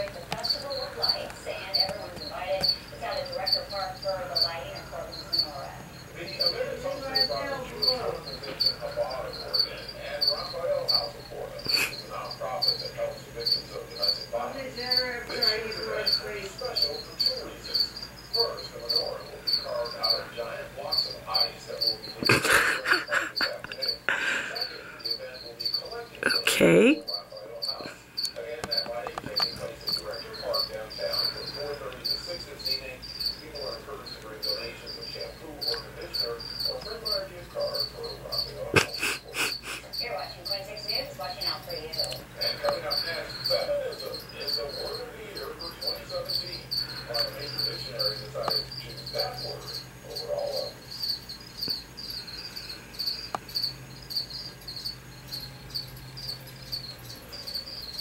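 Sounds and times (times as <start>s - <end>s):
faint muffled voices: 0.0s - 50.8s
crickets chirping: 0.0s - 58.0s.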